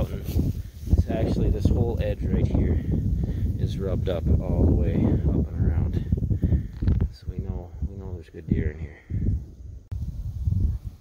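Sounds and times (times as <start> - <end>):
footsteps through dry grass: 0.0 - 2.0.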